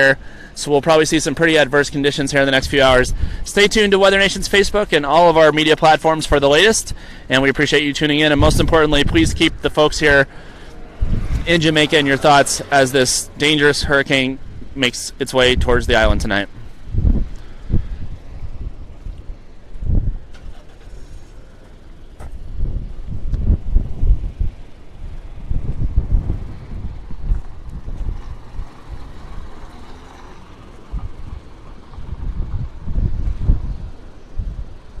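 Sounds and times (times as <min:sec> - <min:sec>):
wind buffeting microphone: 0:02.4 - 0:05.0, 0:06.2 - 0:21.1, 0:22.2 - 0:29.9, 0:30.5 - 0:35.0.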